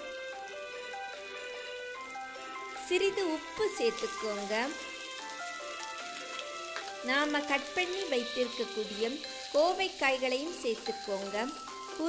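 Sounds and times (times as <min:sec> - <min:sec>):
background music: 0:00.0 - 0:12.0
vegetables sizzling in hot oil: 0:00.0 - 0:12.0.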